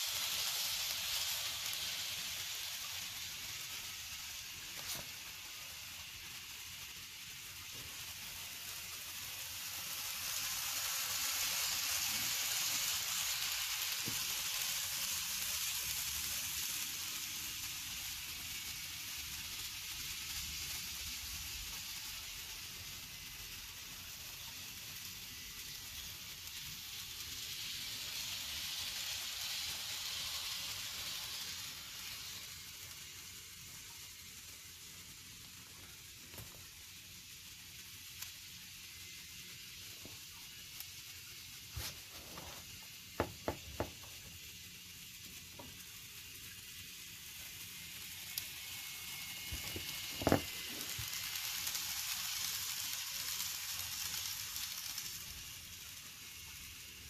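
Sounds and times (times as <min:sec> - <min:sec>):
model trains whirring on track: 0:00.0 - 0:57.0.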